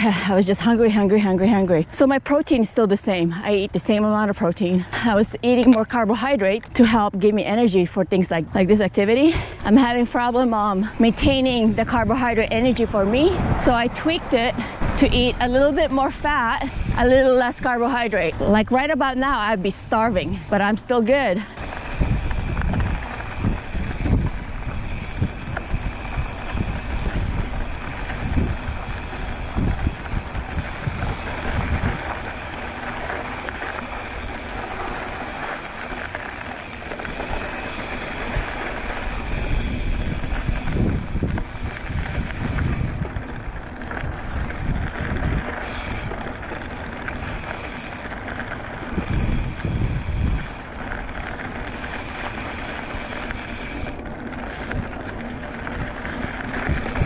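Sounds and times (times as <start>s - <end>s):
tyre and wind noise: 0.0s - 57.0s
bike thumping on bumps: 9.6s - 19.2s, 21.2s - 57.0s.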